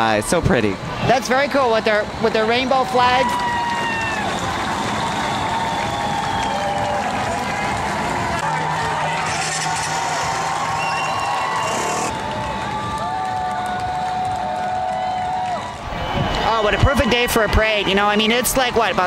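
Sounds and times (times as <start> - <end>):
crowd roar: 2.6 - 19.0
whoops and shouts: 2.8 - 17.1.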